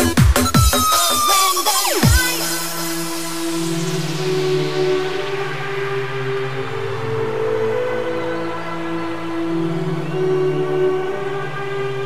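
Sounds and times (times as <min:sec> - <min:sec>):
sustained synth chords: 0:01.9 - 0:12.0.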